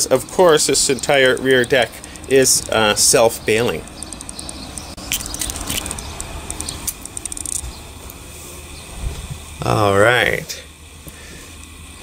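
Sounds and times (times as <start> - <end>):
low steady rumble: 0.0 - 12.0
camera handling noise: 4.0 - 7.7.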